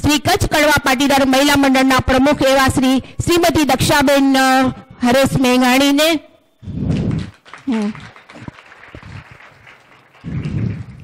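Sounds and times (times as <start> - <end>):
steady hiss of room noise: 0.0 - 11.0
microphone handling rumble: 10.3 - 11.0.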